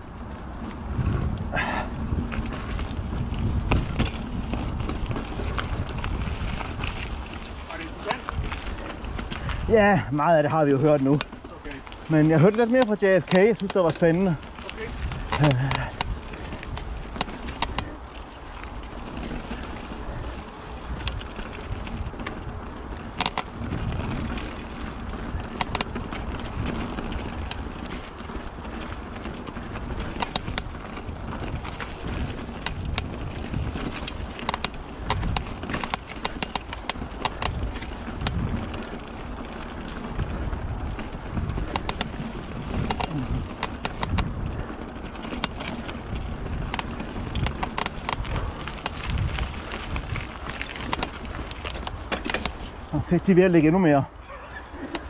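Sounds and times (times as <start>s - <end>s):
bike rattling: 0.0s - 55.0s
bike tyres rumbling over dirt: 0.0s - 55.0s
high squeaks: 1.0s - 2.8s, 32.0s - 33.2s, 41.4s - 41.6s.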